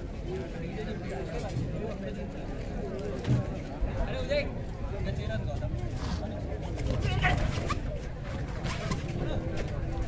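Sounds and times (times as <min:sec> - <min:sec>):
murmuring crowd: 0:00.0 - 0:10.0.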